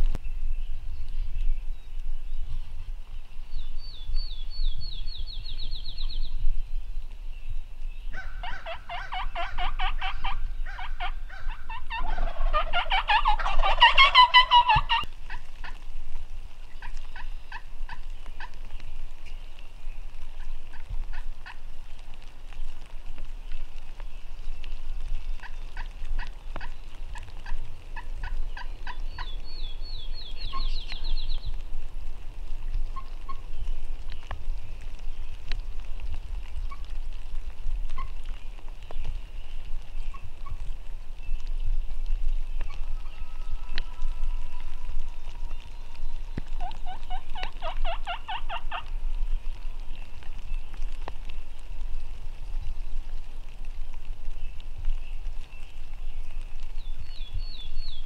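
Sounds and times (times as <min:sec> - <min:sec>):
wild turkeys gobbling: 0:08.1 - 0:15.8, 0:16.7 - 0:18.6, 0:20.4 - 0:21.6, 0:25.4 - 0:29.4, 0:32.8 - 0:33.5, 0:38.0 - 0:38.2, 0:40.0 - 0:40.6, 0:42.6 - 0:48.9.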